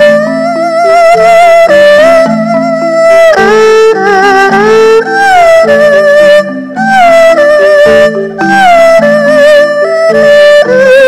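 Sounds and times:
erhu bowed melody: 0.0 - 11.0
wooden xylophone: 0.0 - 11.0.

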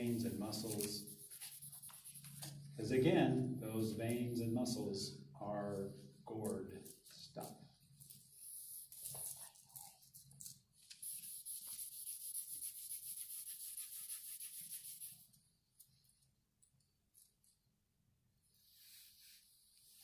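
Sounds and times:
charcoal scraping on paper: 0.1 - 2.6, 11.0 - 15.3.

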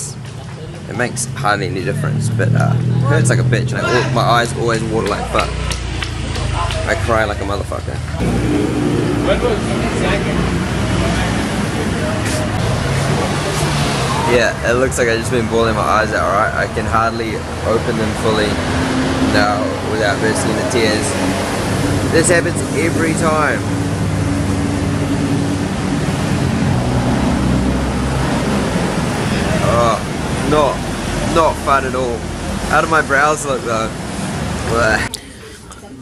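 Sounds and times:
street traffic: 0.0 - 36.0
vehicle engine running: 0.0 - 36.0.

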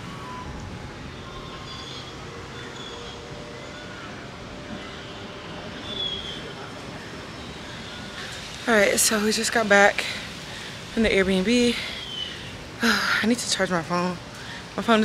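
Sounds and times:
distant city traffic hum: 0.0 - 15.0.

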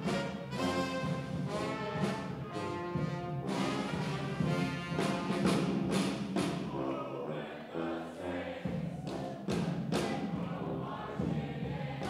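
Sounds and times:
brass band playing: 0.0 - 6.6
drum strikes: 0.0 - 6.8, 8.6 - 12.0.

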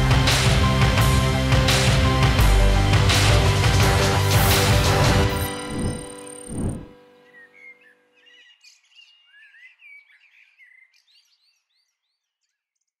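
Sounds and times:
small birds chirping: 5.7 - 13.0.

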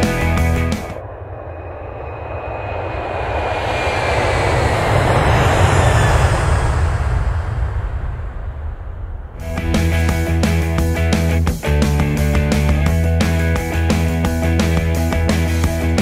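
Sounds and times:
wind rushing over microphone: 0.8 - 10.8.

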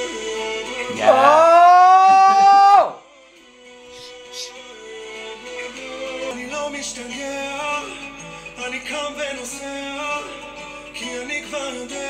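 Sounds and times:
song music: 0.0 - 12.0
high sung note: 0.9 - 2.9.

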